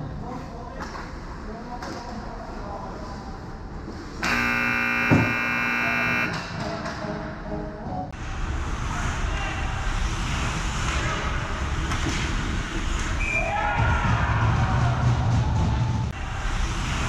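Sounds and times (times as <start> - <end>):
goal horn blast: 4.2 - 6.4.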